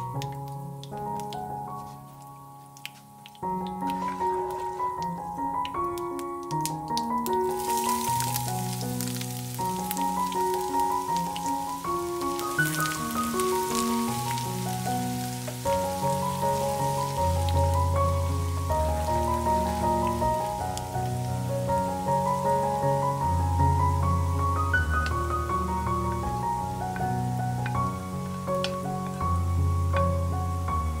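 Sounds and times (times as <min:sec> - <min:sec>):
background music: 0:00.0 - 0:31.0
ginger sizzling in hot oil: 0:00.0 - 0:31.0.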